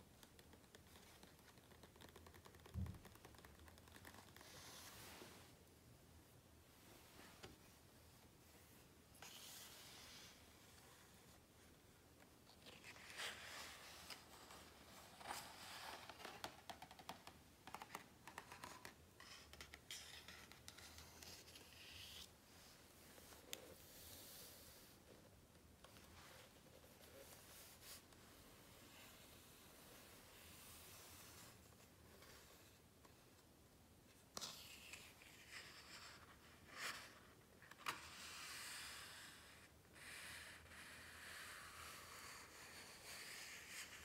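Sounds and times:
soft paper rustle: 0.0s - 5.6s, 6.8s - 38.8s
book page turning: 12.5s - 22.3s.

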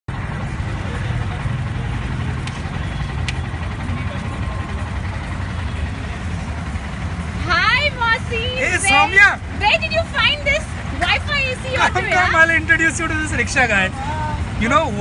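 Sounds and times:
street noise: 0.0s - 15.0s
vehicle engine rumble: 0.0s - 15.0s.

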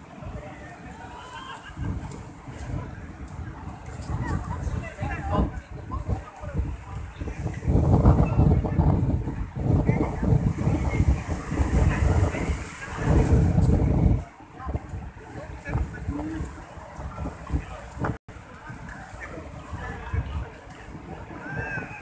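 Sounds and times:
crowd talking: 0.0s - 22.0s
wind buffeting microphone: 0.0s - 22.0s.

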